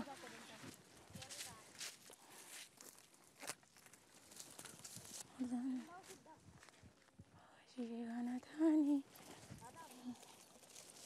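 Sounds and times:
dry crop stalks rustling: 0.0 - 7.2, 9.1 - 11.0.

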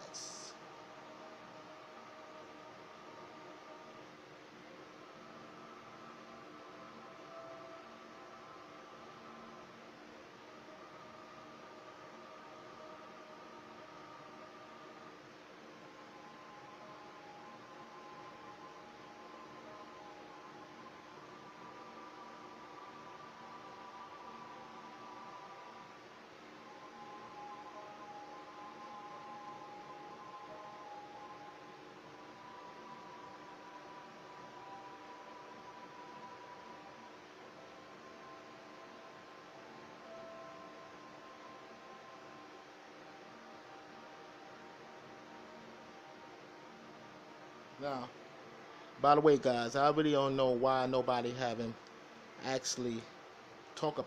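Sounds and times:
steady hiss: 0.0 - 54.0.

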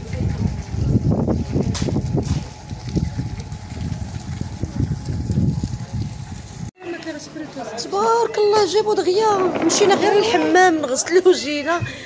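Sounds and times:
wind buffeting microphone: 0.0 - 6.7.

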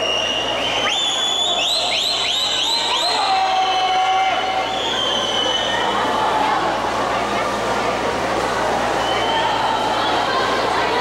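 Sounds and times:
spectators cheering: 0.0 - 6.7
crowd and pool noise: 0.0 - 11.0.

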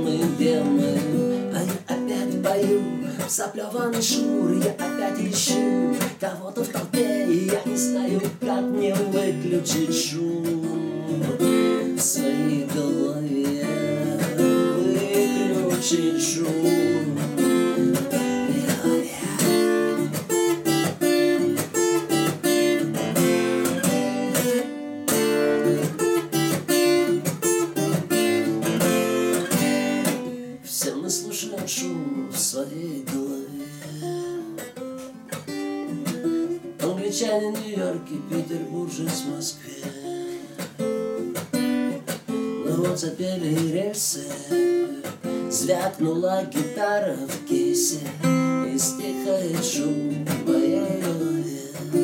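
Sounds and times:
acoustic guitar strumming: 0.0 - 52.0.

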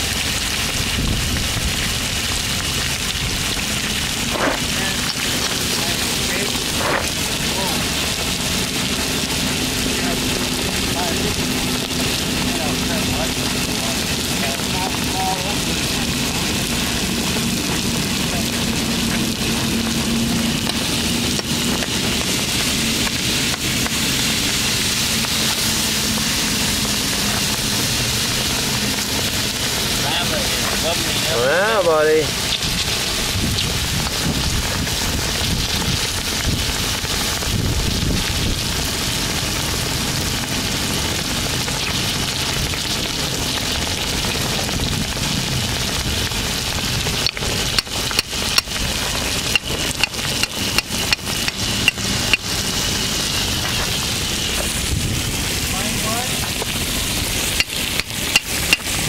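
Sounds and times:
water sizzling on hot metal: 0.0 - 59.0.

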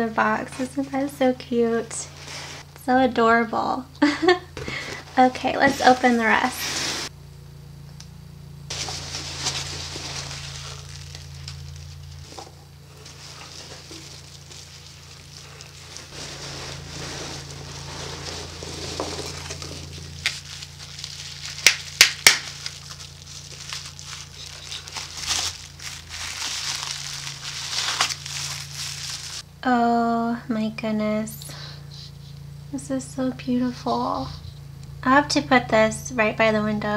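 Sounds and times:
packing material rustling: 8.7 - 29.4.

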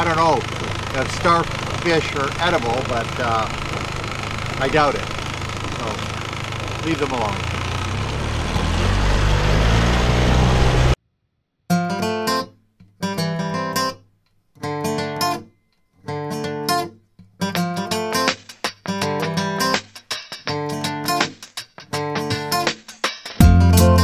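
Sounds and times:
outboard motor running: 0.0 - 11.0
strummed acoustic guitar music: 11.7 - 14.0, 14.6 - 22.7.

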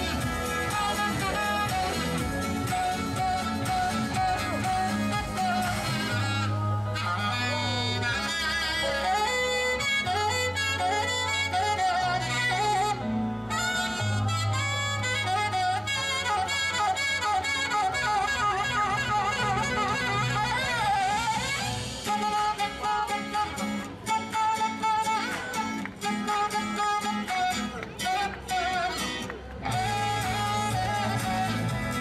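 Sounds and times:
wavering lead melody: 0.0 - 25.0
held bass notes: 0.0 - 32.0.

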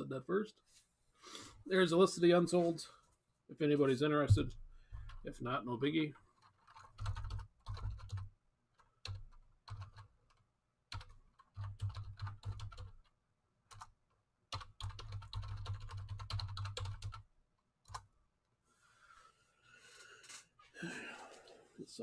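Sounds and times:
typing on computer keyboard: 6.4 - 18.1.

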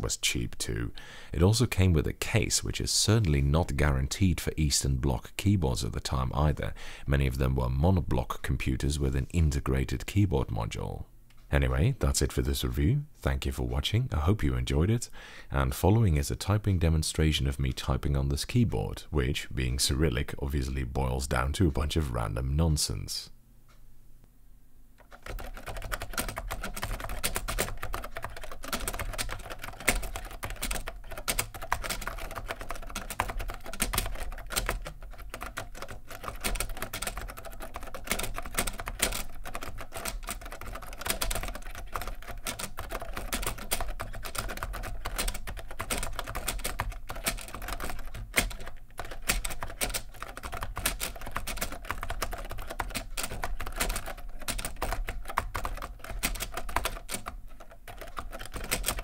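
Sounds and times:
fast typing on keyboard: 25.0 - 59.0.

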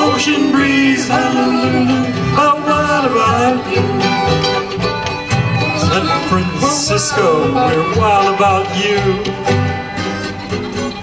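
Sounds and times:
banjo: 0.0 - 11.0
fiddle: 0.0 - 11.0
guitar: 0.0 - 11.0.

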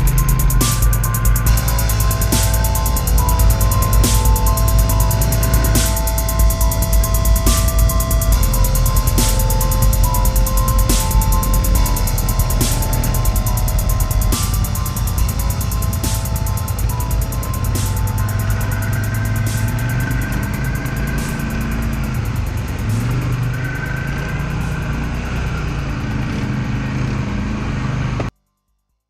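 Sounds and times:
background music: 0.0 - 28.0
atv engine running: 0.0 - 28.3.

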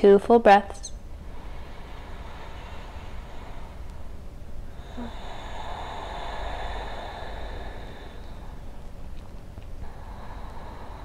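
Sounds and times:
steady low rumble: 0.0 - 11.0
passing vehicle hiss and whine: 1.0 - 11.0.

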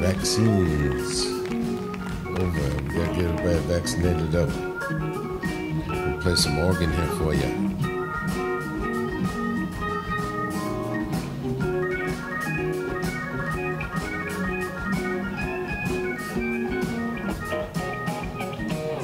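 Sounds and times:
drums keeping a steady beat: 0.0 - 19.0
organ chords: 0.0 - 19.0.

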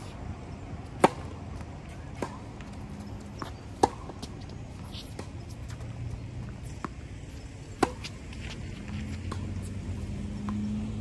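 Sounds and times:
tennis racket striking ball: 0.9 - 1.4, 2.2 - 2.5, 3.4 - 4.3, 7.8 - 8.2.

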